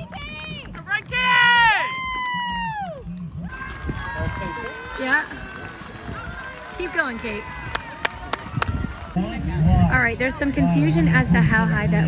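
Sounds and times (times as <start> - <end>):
spectators screaming and cheering: 0.0 - 10.7
crowd noise: 0.0 - 12.0.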